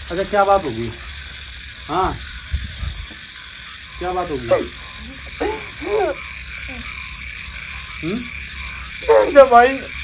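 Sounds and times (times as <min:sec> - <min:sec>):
frogs croaking: 0:00.0 - 0:10.0.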